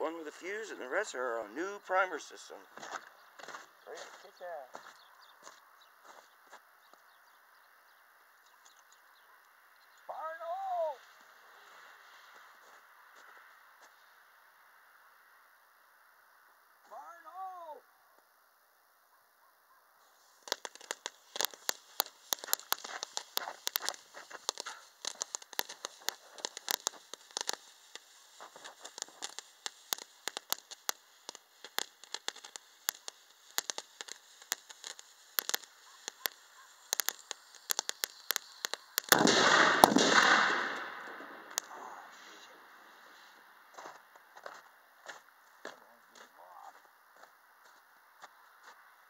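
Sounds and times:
fuse sputtering and crackling: 20.1 - 42.0
loud cannon blast: 39.1 - 42.0.

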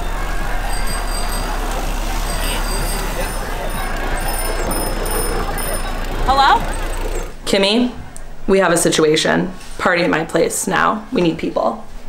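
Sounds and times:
low hum: 0.0 - 7.6
indistinct voices: 0.0 - 8.1
outdoor noise rush: 0.0 - 10.9.

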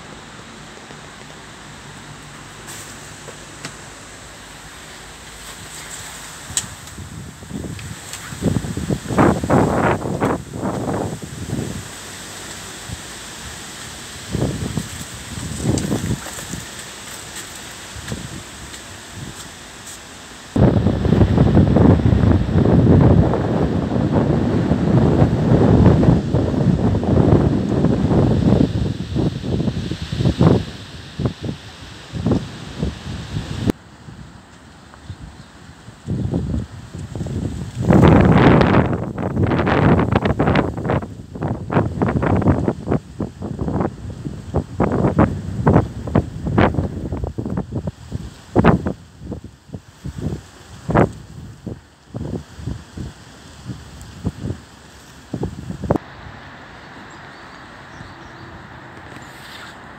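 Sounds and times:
gusty wind buffeting microphone: 0.0 - 34.4, 35.0 - 59.9.

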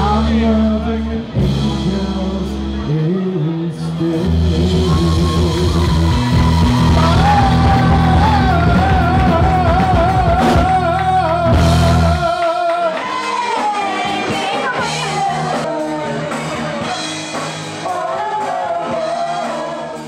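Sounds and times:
live rock band playing: 0.0 - 20.0
person singing: 0.0 - 20.0.

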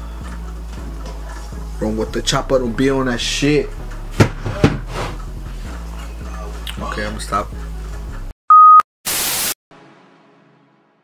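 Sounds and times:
tv static hiss: 9.1 - 9.6.

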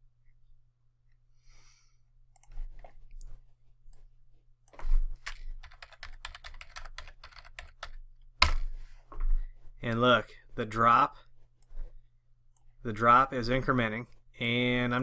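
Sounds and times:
computer keyboard typing: 5.2 - 8.6.

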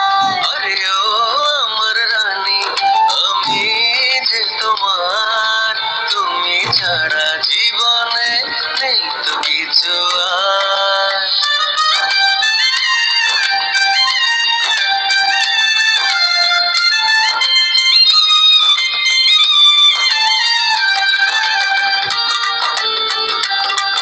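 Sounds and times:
person singing: 0.0 - 12.0
instrumental accompaniment: 0.0 - 24.0.

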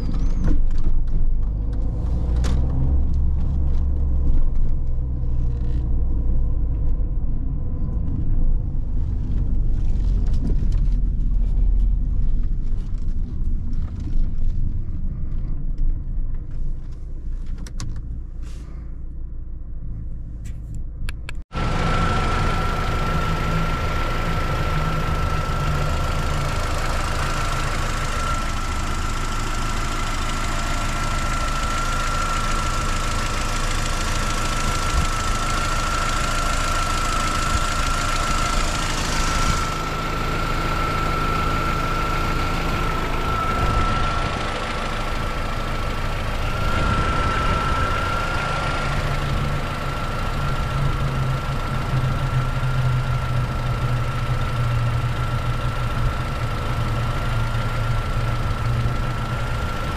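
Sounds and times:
car engine idling: 0.0 - 59.9
thin high whine: 21.7 - 54.1.

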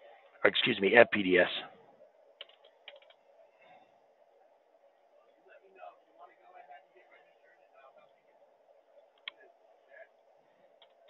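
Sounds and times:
faint keyboard keystrokes: 2.4 - 3.2.

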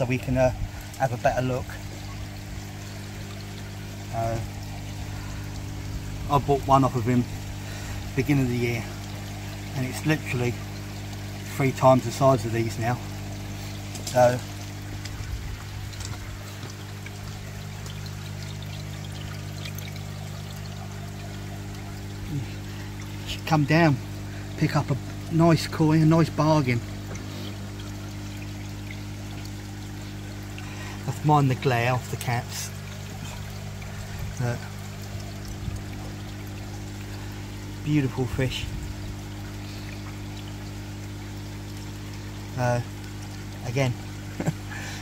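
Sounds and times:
low electrical hum: 0.0 - 45.0
water pouring and splashing: 0.0 - 45.0.

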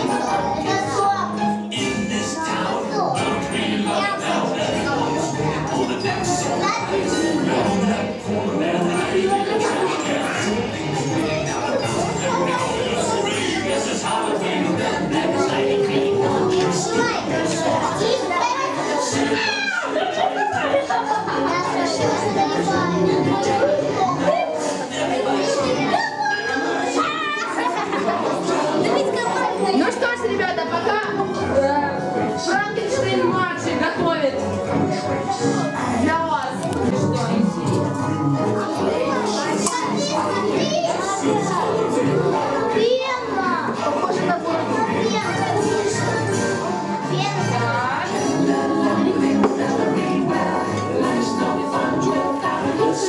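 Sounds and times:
children chattering and calling out: 0.0 - 53.0
music playing: 0.0 - 53.0.

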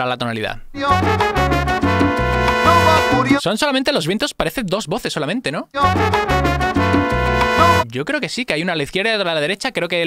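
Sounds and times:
bass line: 0.8 - 3.4, 5.8 - 7.8
salsa horns holding long notes: 0.8 - 3.4, 5.8 - 7.8.

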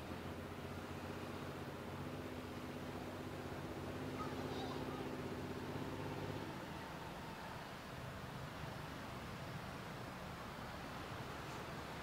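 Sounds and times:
beach ambience: 0.0 - 12.0.

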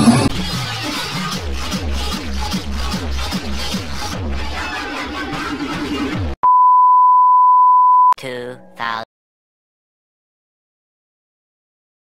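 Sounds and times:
dance music: 0.0 - 6.1
single-pitch beep: 6.4 - 8.2.

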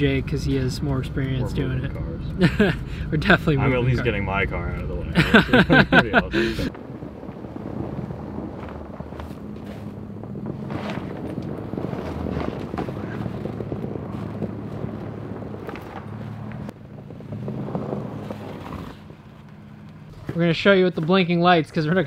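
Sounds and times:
vehicle engine running low: 0.0 - 20.4.

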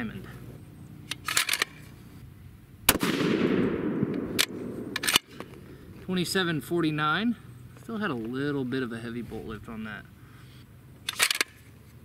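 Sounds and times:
rifle shot with rumbling tail: 2.9 - 5.8
sharp crack: 2.9 - 5.8.

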